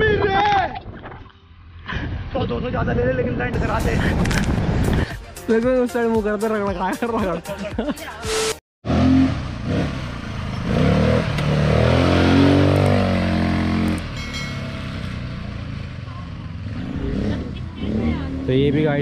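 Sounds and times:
vehicle engine running: 9.3 - 19.0.

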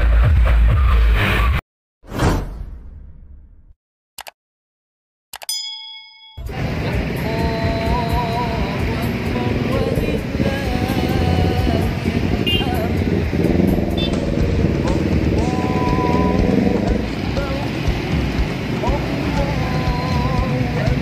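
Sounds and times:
scooters and motorbikes passing: 6.5 - 21.0.

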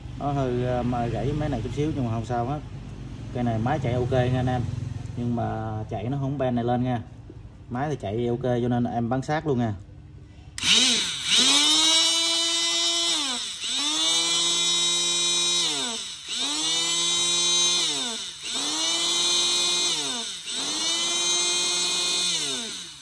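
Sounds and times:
hydraulic cutter motor whining: 10.6 - 23.0.

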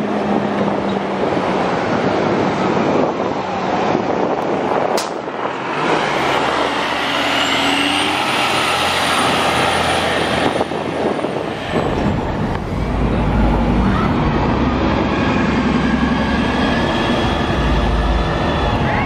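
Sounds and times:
bus engine passing by: 0.0 - 19.0
sharp click: 5.0 - 5.2.

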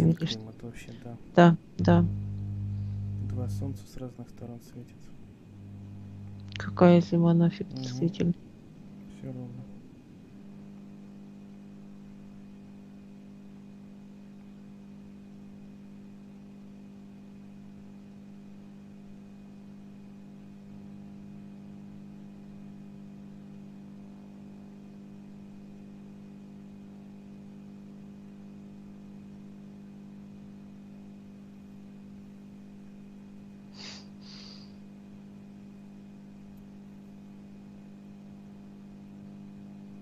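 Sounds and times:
low electrical hum: 0.0 - 40.0.

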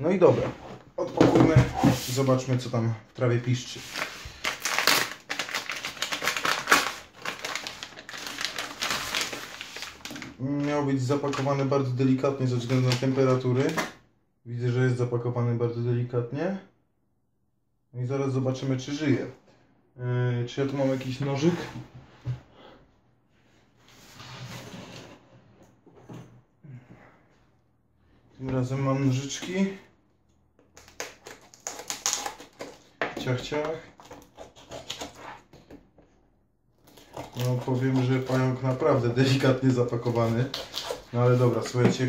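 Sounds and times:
paper envelope crinkling: 3.8 - 10.4.

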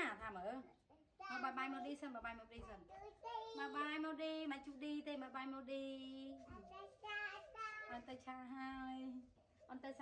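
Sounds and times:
child singing: 6.6 - 7.9.

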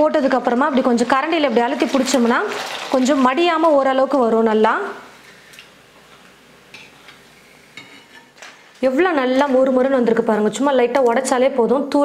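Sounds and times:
food sizzling in hot oil: 0.0 - 4.2.

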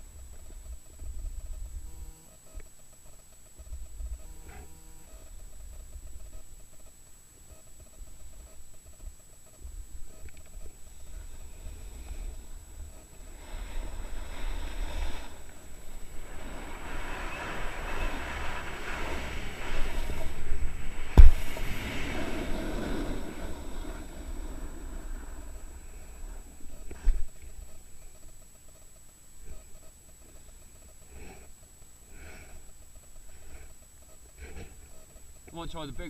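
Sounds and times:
wind rumbling on microphone: 0.0 - 2.2, 7.8 - 28.3
snowboard scraping over snow: 10.6 - 27.9
board thumping on snow: 11.7 - 27.7.

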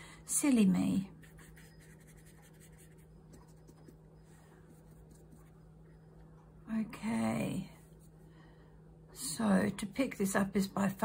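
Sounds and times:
brush scratching over paper: 1.2 - 4.0, 4.6 - 5.6.

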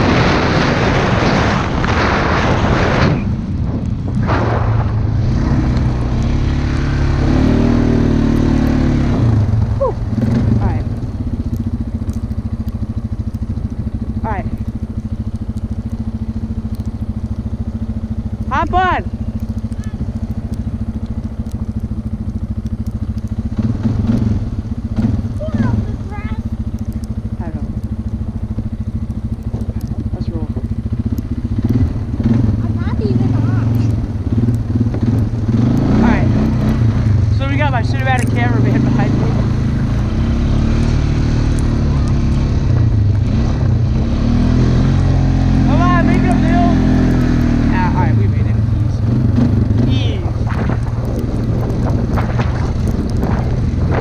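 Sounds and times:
atv engine revving: 0.0 - 54.0.

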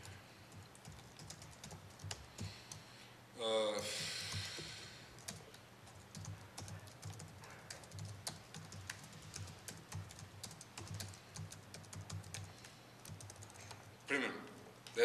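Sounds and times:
laptop keyboard typing: 0.0 - 2.9, 4.0 - 14.0.

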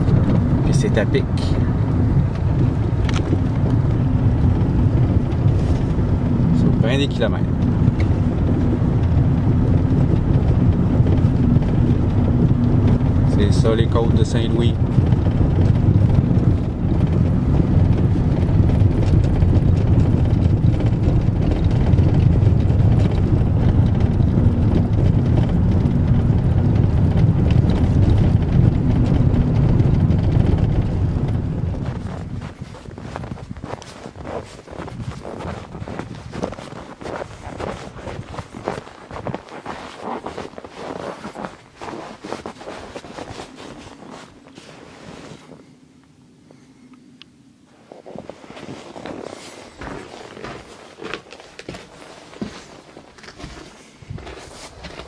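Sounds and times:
vehicle engine and tyre rumble: 0.0 - 55.0
footsteps in snow: 31.8 - 45.7, 47.8 - 55.0.

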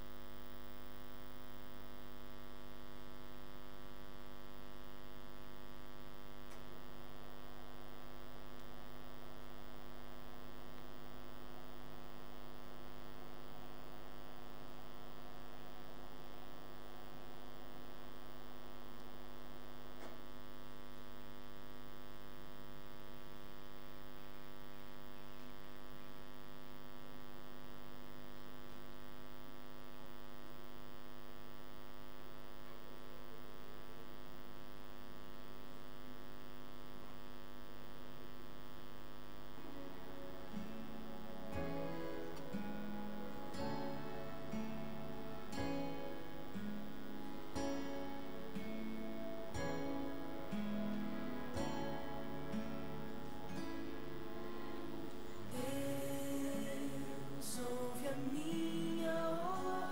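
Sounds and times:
electrical mains hum: 0.0 - 59.9.

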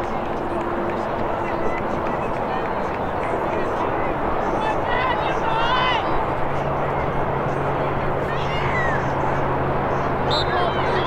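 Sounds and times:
steady rush of noise: 0.0 - 11.0.

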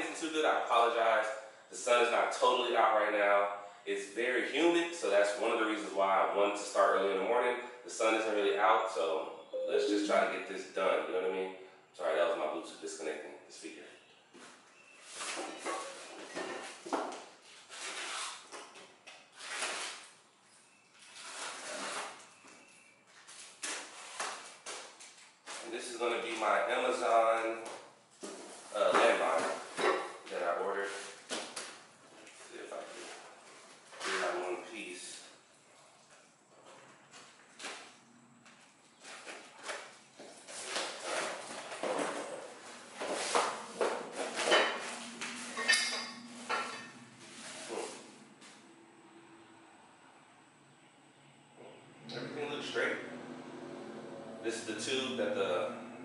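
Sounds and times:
cardboard crackling and scraping: 21.0 - 22.2.

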